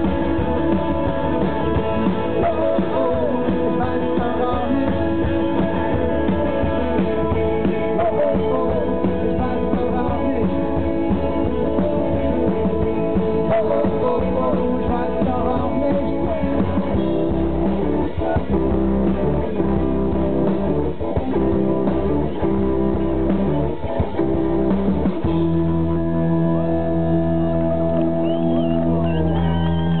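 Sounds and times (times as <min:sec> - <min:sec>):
rock band playing: 0:00.0 - 0:30.0.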